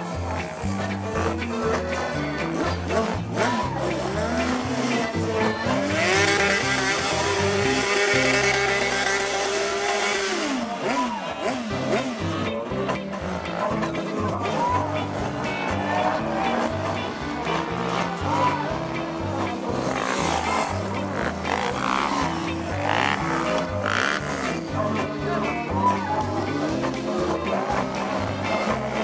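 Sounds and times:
music with steady beat: 0:00.0 - 0:10.5, 0:11.4 - 0:29.0
motorcycle engine revving: 0:00.0 - 0:29.0.

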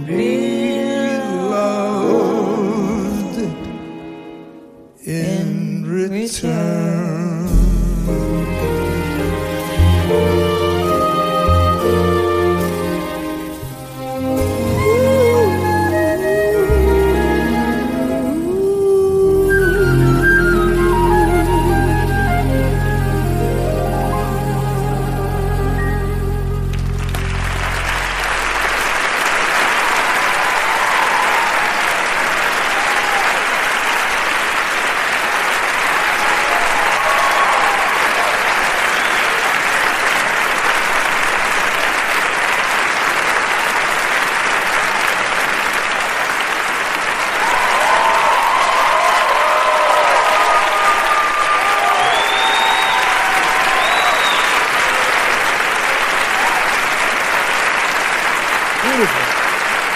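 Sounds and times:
audience applauding: 0:09.5 - 0:19.1, 0:25.8 - 0:59.9
audience cheering and shouting: 0:29.8 - 0:33.8, 0:35.8 - 0:39.8, 0:47.2 - 0:57.2
short whistles: 0:52.0 - 0:54.7.

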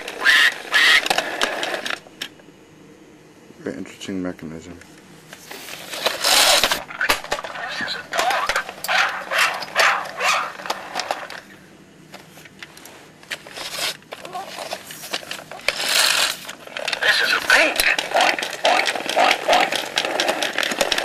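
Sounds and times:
plastic toy parts clicking: 0:15.3 - 0:21.0
muffled voice: 0:17.0 - 0:18.0.

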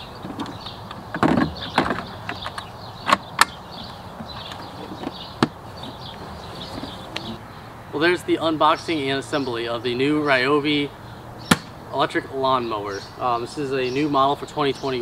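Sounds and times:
hard plastic clicks and knocks: 0:00.2 - 0:06.2.

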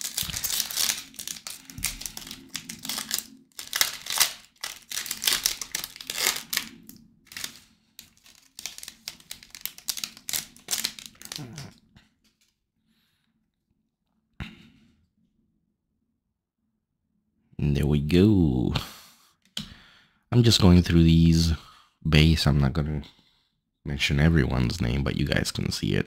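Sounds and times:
foil wrapper tearing and crinkling: 0:00.0 - 0:11.7.

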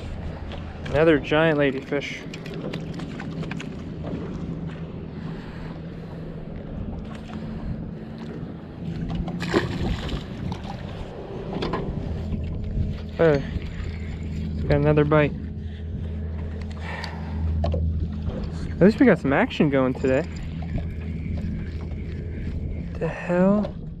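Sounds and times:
low motor hum: 0:00.0 - 0:24.0.

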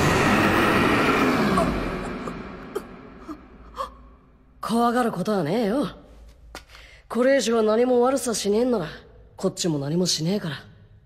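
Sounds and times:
monster roar sliding down: 0:00.0 - 0:03.2.

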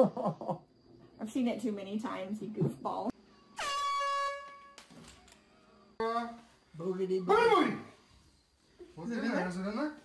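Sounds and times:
horn-like tone: 0:03.5 - 0:04.9.

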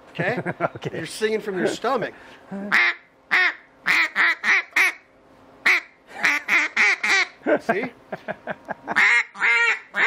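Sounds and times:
duck call quacks: 0:02.7 - 0:05.0, 0:05.6 - 0:07.4, 0:08.9 - 0:10.0.

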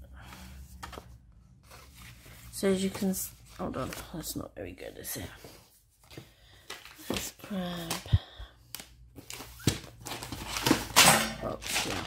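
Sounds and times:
paper rustling: 0:00.7 - 0:04.4, 0:09.2 - 0:12.0.

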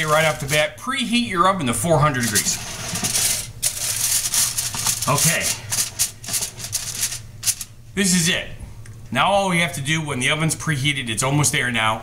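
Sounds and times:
aluminium foil crinkling: 0:00.0 - 0:00.7, 0:02.1 - 0:07.8
low steady hum: 0:00.0 - 0:12.0.

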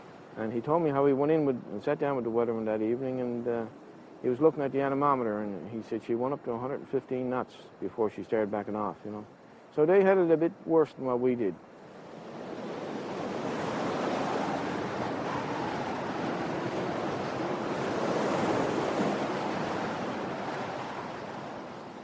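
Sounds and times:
rough sea roar: 0:09.2 - 0:22.0
storm wind: 0:11.6 - 0:22.0.

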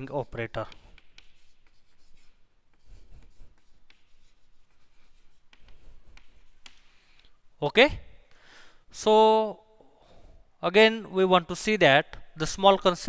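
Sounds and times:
chalk scratching on chalkboard: 0:00.0 - 0:07.4.

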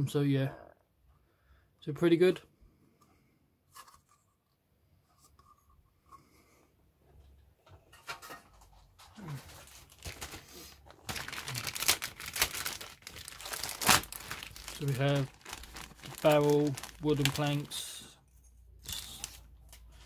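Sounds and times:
plastic bag crinkling: 0:09.2 - 0:18.0.

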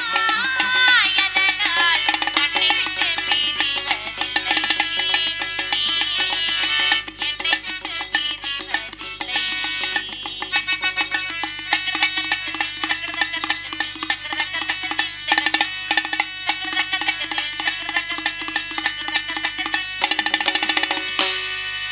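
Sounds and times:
tabla hand strokes: 0:00.0 - 0:10.0
held melodic tones: 0:00.0 - 0:21.5.

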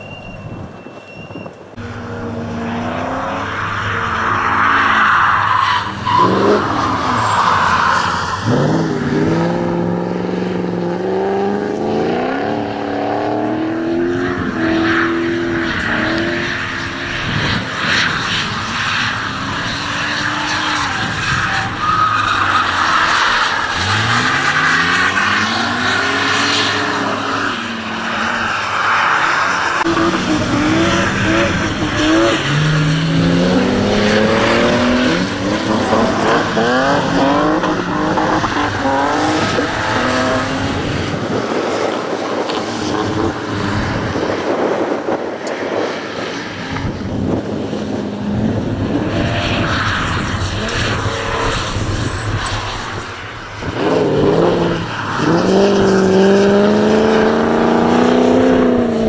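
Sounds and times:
car engines revving: 0:00.0 - 0:59.0.

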